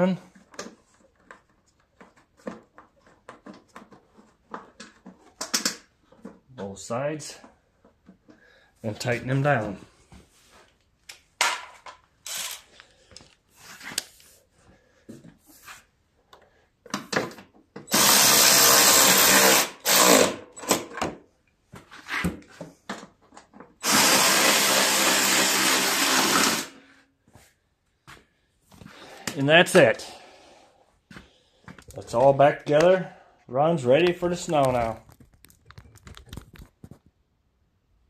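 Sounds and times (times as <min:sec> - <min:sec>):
power drill-driver running: 0:12.3 - 0:12.7, 0:17.9 - 0:20.8, 0:23.8 - 0:26.8.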